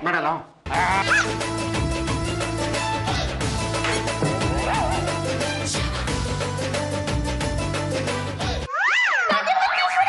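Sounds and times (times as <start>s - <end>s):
background music: 0.7s - 8.7s
sliding pitch sound effect: 4.0s - 6.0s.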